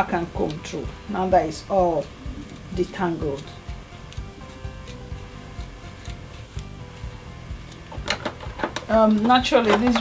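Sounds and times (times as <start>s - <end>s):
background music with low beat: 0.0s - 10.0s
comb drawn through hair: 1.6s - 10.0s.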